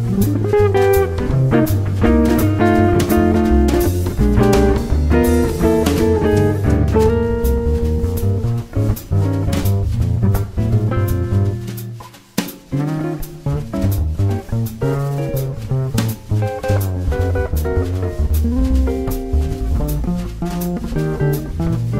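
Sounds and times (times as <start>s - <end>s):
jazz trio playing: 0.0s - 21.9s.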